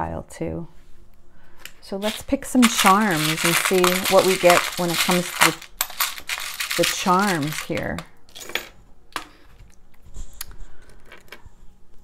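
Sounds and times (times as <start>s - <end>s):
metal charms clinking in a tray: 2.0s - 8.5s.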